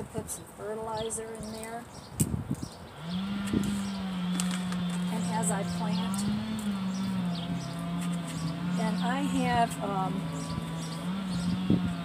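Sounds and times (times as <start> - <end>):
low motor drone: 2.8 - 12.0
trowel scraping soil: 3.4 - 12.0.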